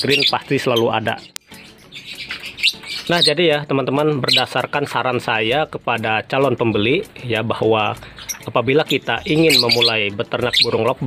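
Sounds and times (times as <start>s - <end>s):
lovebirds chirping: 0.0s - 11.0s.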